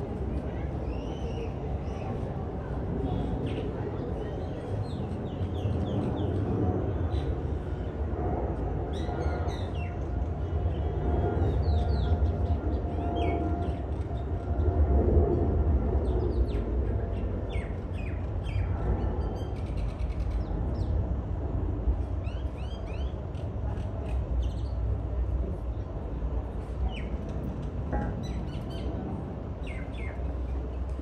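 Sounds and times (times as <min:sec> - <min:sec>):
low outdoor rumble: 0:00.0 - 0:31.0.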